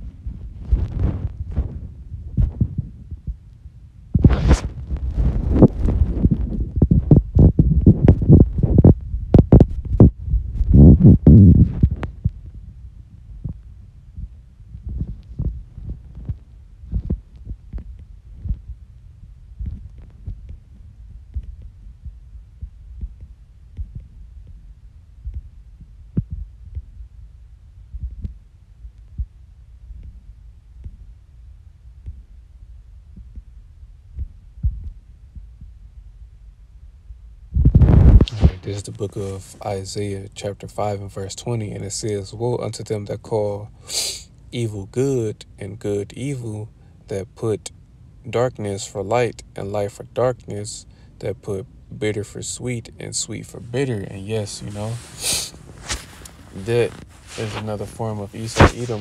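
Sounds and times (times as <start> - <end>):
low hum: 0.0 - 59.0.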